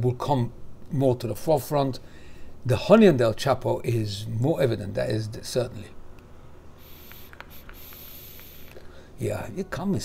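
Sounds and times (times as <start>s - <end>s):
faint coil crackles: 6.8s - 8.9s
airy hiss of vape draw: 6.8s - 9.0s.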